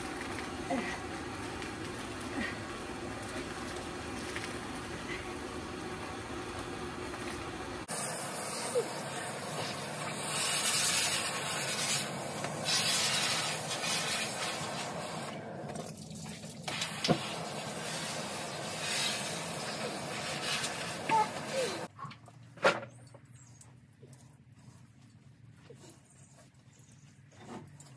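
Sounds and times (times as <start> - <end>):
hose water spraying on wet coat: 6.9 - 21.9.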